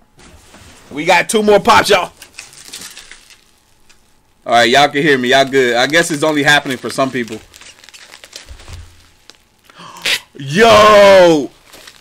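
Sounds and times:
cardboard packaging rustling: 0.2s - 9.8s, 10.9s - 12.0s.

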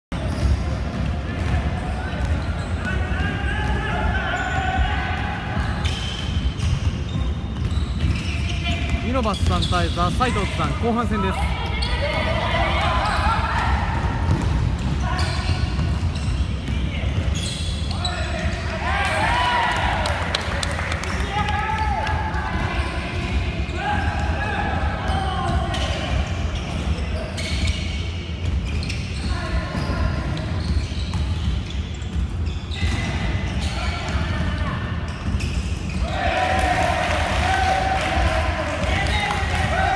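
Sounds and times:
players' voices: 0.2s - 39.9s.

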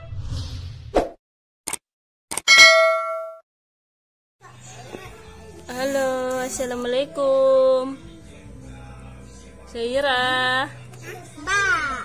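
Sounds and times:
bright bell ding: 2.5s - 3.4s.

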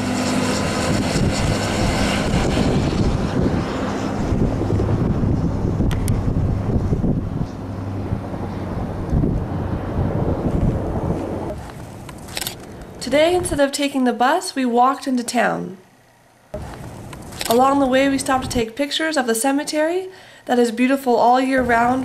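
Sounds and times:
engine drone: 0.0s - 13.6s, 15.8s - 18.8s
wind noise on microphone: 0.5s - 13.7s, 16.6s - 18.8s, 21.5s - 22.0s.

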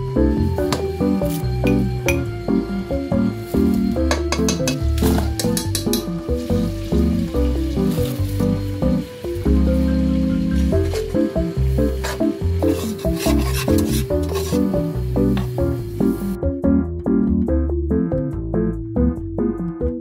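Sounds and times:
lo-fi background music: 0.0s - 20.0s
flour sizzling in hot fat: 2.6s - 16.4s.

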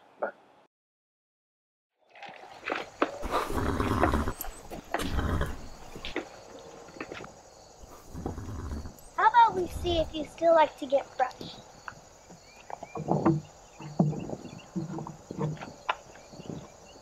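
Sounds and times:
horse calling: 3.0s - 7.2s, 7.8s - 10.2s.

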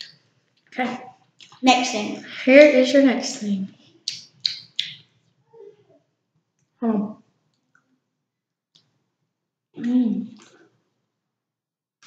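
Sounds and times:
finger snaps: 4.1s - 5.0s.

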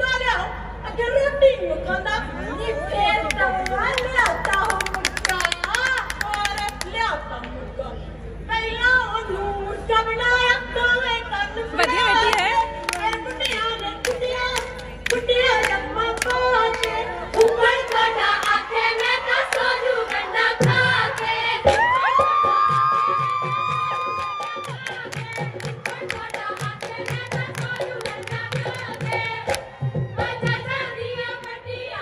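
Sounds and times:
hand claps: 3.3s - 6.9s, 11.8s - 20.3s, 24.1s - 29.7s
women singing in chorus: 9.3s - 32.0s.

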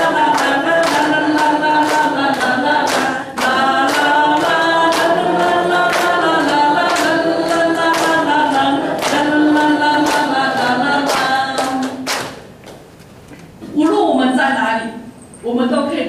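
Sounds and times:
group singing worship song: 0.0s - 12.4s.

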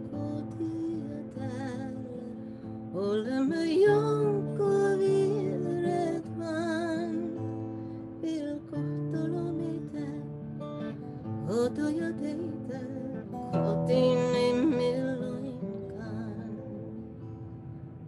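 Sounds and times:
woman singing with vibrato: 0.0s - 10.5s, 11.2s - 17.2s
plucked acoustic guitar: 0.0s - 18.0s.

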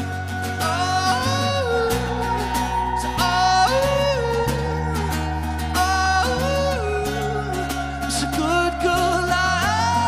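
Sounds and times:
high wordless vocal: 0.0s - 10.0s
pop-rock band playing: 0.0s - 10.0s.

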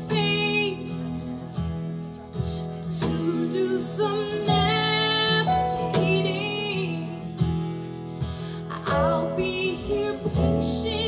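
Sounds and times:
guitar accompaniment: 0.0s - 11.0s
woman singing pop ballad: 0.0s - 11.0s.

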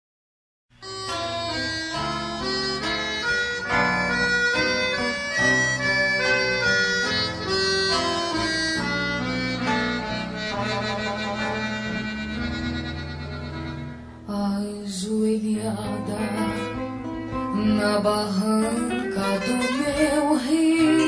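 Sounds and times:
held bass notes: 0.8s - 14.3s
free-reed instrument melody: 0.8s - 21.0s.

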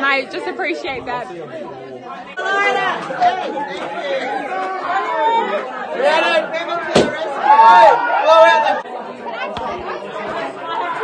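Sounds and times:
people talking and laughing: 0.0s - 11.0s
sharp knock: 6.9s - 7.2s.

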